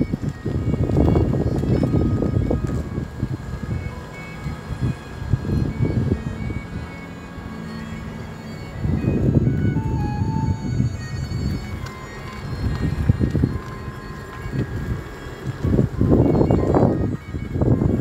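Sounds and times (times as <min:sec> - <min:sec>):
faint chiming music: 0:00.0 - 0:18.0.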